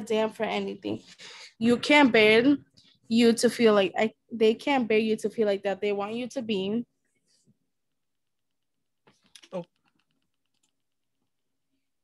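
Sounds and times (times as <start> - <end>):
faint keyboard clicks: 8.3 - 11.5.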